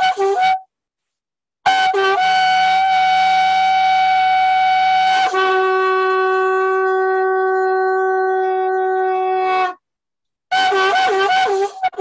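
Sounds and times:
conch shell blown: 0.0 - 0.7, 1.6 - 9.8, 10.5 - 12.0.

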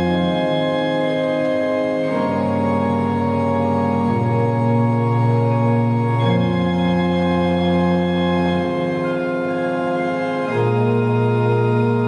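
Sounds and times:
organ playing sustained chords: 0.0 - 12.0.

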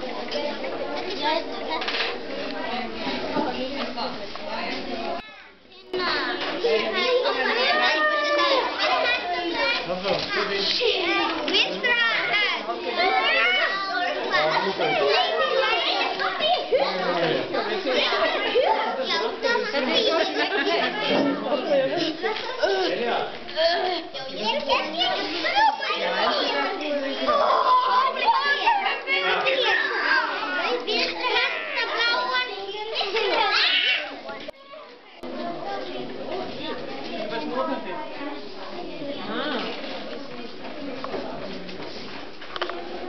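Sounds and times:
children talking and calling out: 0.0 - 43.0.

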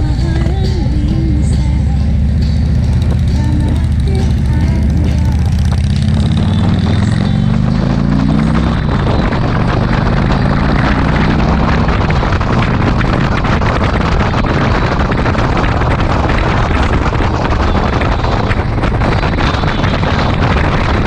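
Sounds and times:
motorcycle engine accelerating: 0.0 - 21.0
wind noise on microphone: 0.0 - 21.0.

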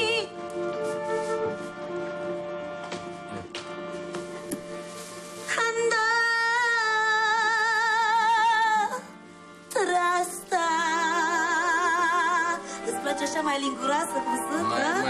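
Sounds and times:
woman singing with vibrato: 0.0 - 0.3, 5.5 - 9.1, 9.7 - 15.0.

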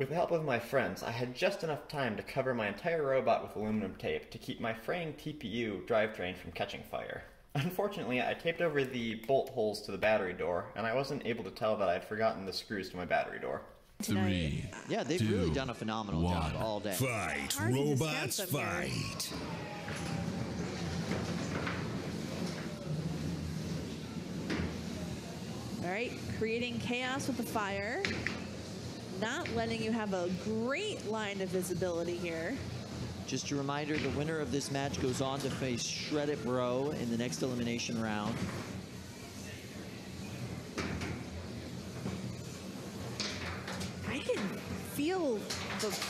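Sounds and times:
background voices: 14.0 - 19.6.

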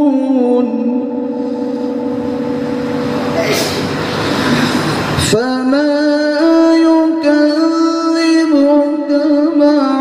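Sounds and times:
man reciting melodically: 0.0 - 1.4, 5.2 - 10.0.

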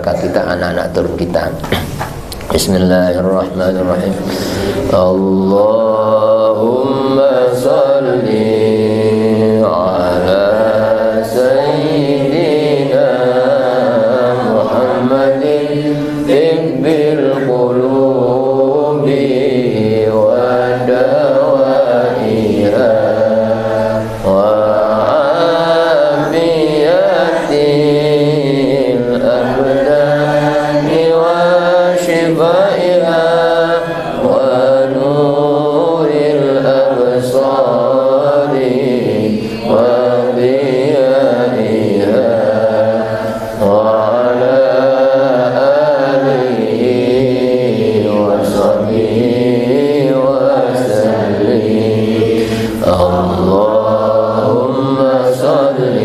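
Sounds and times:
man chanting prayer into microphone: 0.0 - 1.8, 2.5 - 56.0.

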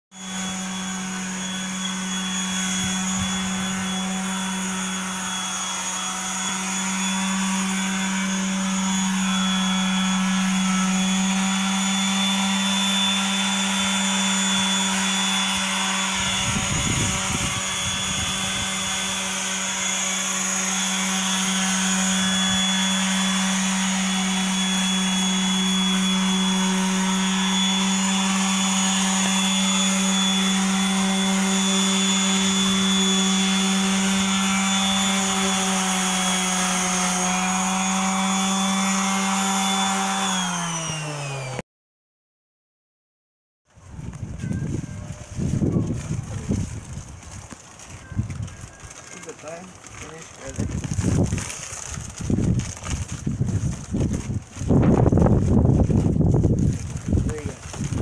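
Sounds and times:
electric sander whining on metal: 0.1 - 41.6, 44.0 - 58.0
rough scraping and handling noise: 43.7 - 58.0.

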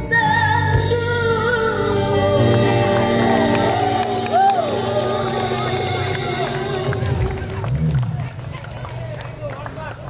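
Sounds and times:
crowd chatter: 1.2 - 10.0.

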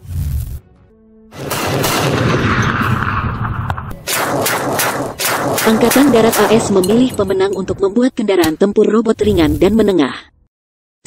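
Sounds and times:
rapid automatic gunfire: 4.0 - 6.8.

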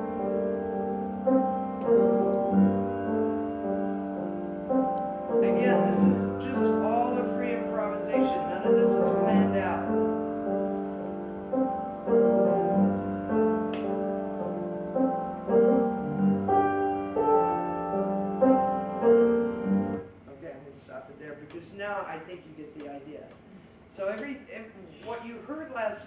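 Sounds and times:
solo piano through speakers: 0.0 - 20.2.

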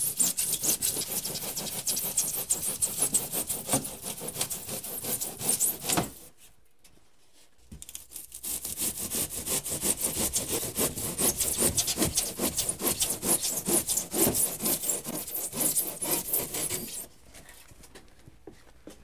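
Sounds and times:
handsaw cutting foam board: 0.0 - 6.3, 7.9 - 17.1.

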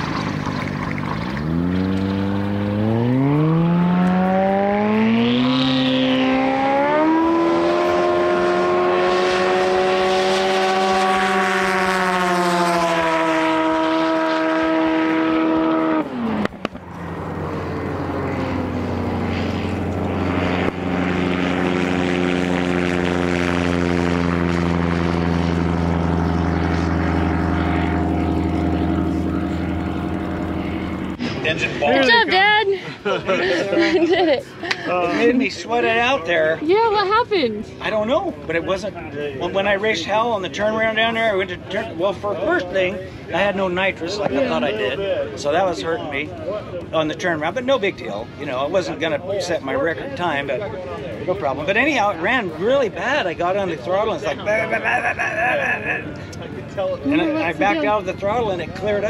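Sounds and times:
light aircraft engine and propeller: 0.0 - 15.1, 15.8 - 37.0, 37.6 - 59.0.

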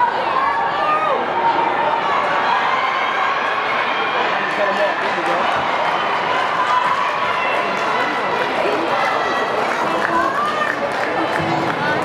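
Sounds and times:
echoing crowd hubbub: 0.0 - 12.0.

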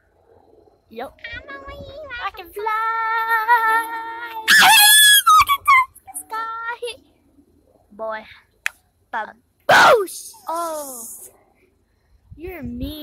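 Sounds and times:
person screaming: 4.5 - 5.5, 9.7 - 10.7.

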